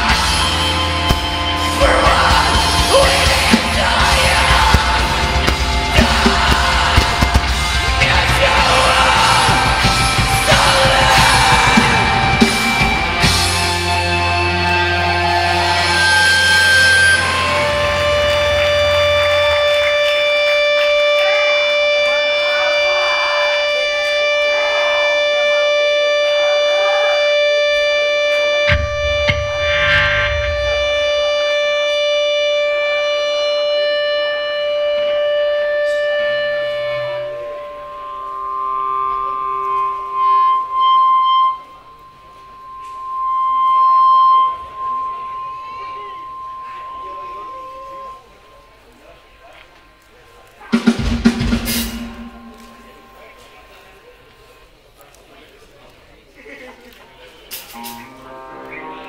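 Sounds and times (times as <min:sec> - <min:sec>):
electric guitar drone: 0:00.0 - 0:49.1, 0:50.7 - 0:53.9, 0:57.7 - 0:59.0
band playing heavy chord: 0:00.0 - 0:54.6, 0:57.6 - 0:59.0.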